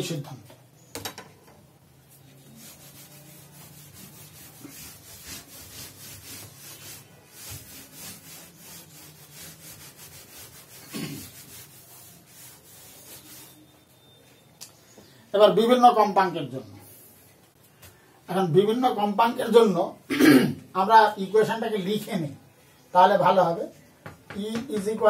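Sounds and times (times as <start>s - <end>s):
duster rubbing a chalkboard: 2.1s - 14.0s.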